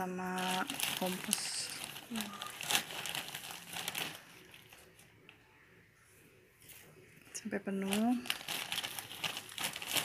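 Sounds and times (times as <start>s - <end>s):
plastic sack crinkling: 0.0s - 5.0s, 7.8s - 10.0s.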